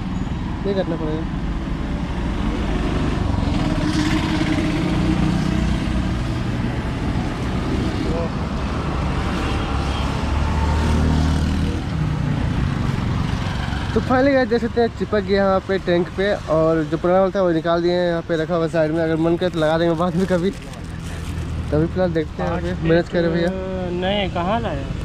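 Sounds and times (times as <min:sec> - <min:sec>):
passing vehicle engines: 0:00.0 - 0:25.0.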